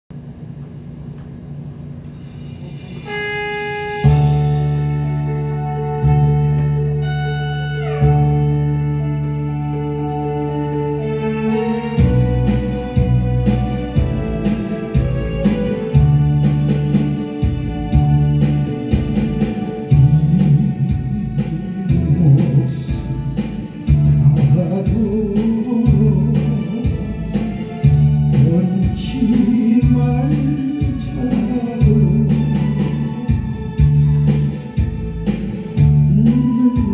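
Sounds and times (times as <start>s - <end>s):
low hum: 0.1s - 29.3s
bass line: 2.2s - 36.9s
held wind instrument note: 2.4s - 17.6s
plucked guitar: 4.0s - 26.0s
man singing into microphone: 19.9s - 27.3s, 28.3s - 33.4s, 36.0s - 36.9s.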